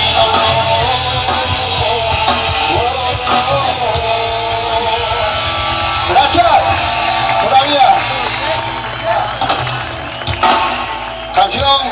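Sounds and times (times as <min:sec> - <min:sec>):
live ska punk band: 0:00.0 - 0:11.9
voices over music: 0:00.0 - 0:11.9.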